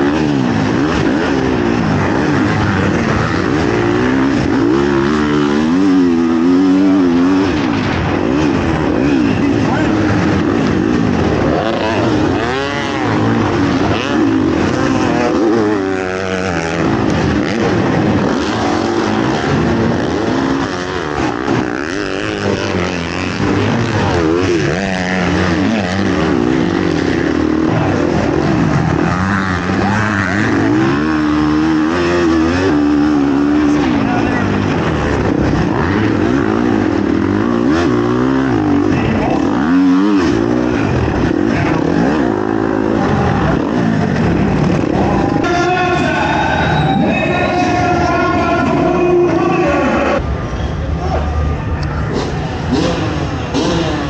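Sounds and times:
dirt bike engine racing: 0:00.0 - 0:54.0
other motocross bikes running: 0:00.0 - 0:54.0.

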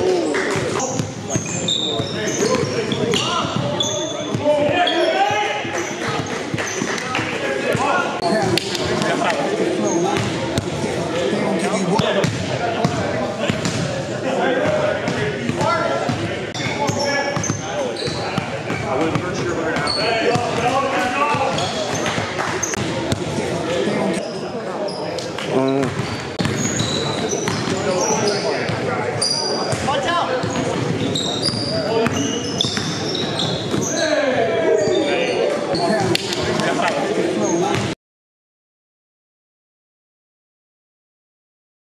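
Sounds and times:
people talking and shouting: 0:00.0 - 0:38.0
sneakers squeaking on court: 0:00.6 - 0:07.0, 0:14.7 - 0:36.5
basketball bouncing: 0:12.2 - 0:13.9, 0:25.8 - 0:27.8, 0:29.7 - 0:31.1, 0:32.0 - 0:33.9.

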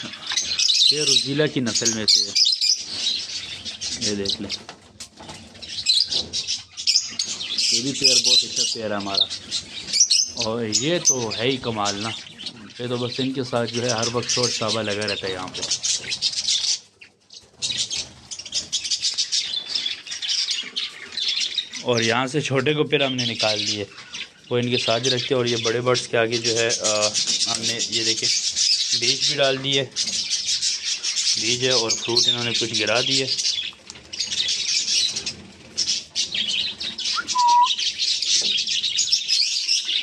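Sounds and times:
parrots chirping and squawking: 0:00.0 - 0:40.0
short bird whistle: 0:37.2 - 0:37.8.

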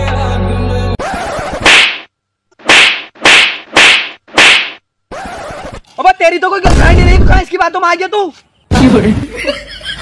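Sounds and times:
whip-like cracking swishes: 0:01.6 - 0:04.8.

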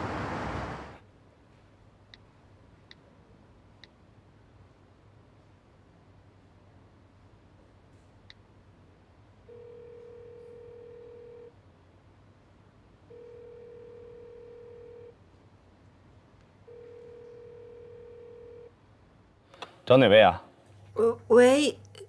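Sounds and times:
telephone ringback beeps: 0:09.5 - 0:11.5, 0:13.1 - 0:15.1, 0:16.7 - 0:18.7.

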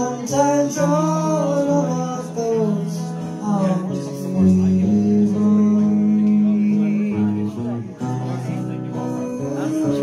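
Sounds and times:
acoustic guitar: 0:00.0 - 0:10.0
person singing: 0:00.0 - 0:10.0.

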